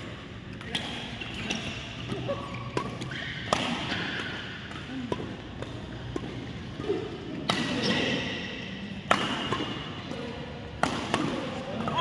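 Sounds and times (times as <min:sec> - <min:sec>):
court shoes squeaking: 0:00.0 - 0:12.0
rackets striking shuttlecock: 0:00.0 - 0:12.0.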